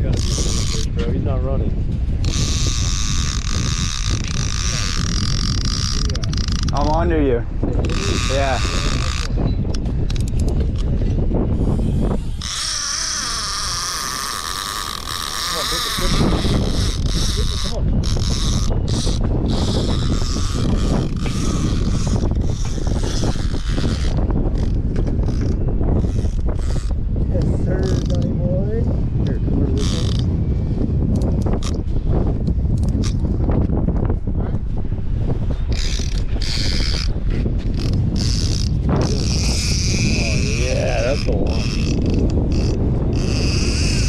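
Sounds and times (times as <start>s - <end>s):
fishing reel ratcheting: 0.0s - 1.1s, 2.2s - 7.1s, 7.8s - 11.0s, 11.6s - 28.3s, 29.2s - 30.3s, 31.2s - 31.9s, 32.7s - 33.2s, 35.7s - 44.0s
wind buffeting microphone: 0.0s - 44.0s.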